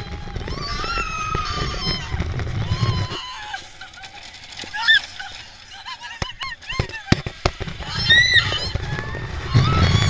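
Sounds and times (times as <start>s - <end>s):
riders shrieking: 0.0s - 10.0s
roller coaster clacks: 0.0s - 10.0s.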